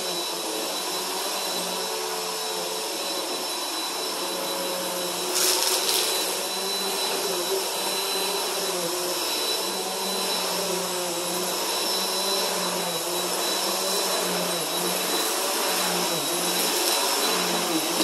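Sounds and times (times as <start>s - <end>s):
vacuum cleaner motor humming: 0.0s - 18.0s.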